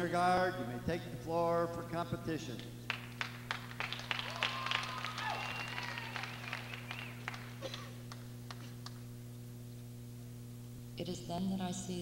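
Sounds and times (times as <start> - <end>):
low electrical hum: 0.0 - 12.0
audience applause: 2.9 - 8.8.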